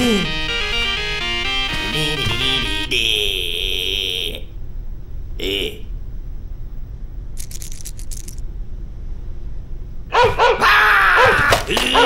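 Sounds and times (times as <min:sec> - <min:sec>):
alarm clock buzzing: 0:00.0 - 0:03.0.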